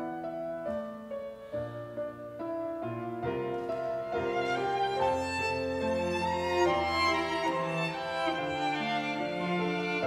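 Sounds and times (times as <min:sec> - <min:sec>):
grand piano playing: 0:00.0 - 0:10.0
violin playing: 0:03.6 - 0:10.0.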